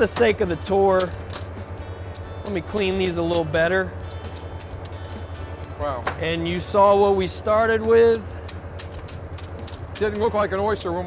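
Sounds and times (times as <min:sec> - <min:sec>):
clicks of shells being handled: 0:01.0 - 0:05.8, 0:08.2 - 0:10.1.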